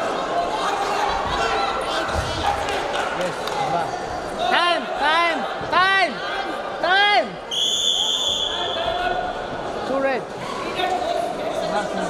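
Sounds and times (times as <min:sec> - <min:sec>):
referee whistle blast: 0:07.5 - 0:08.9.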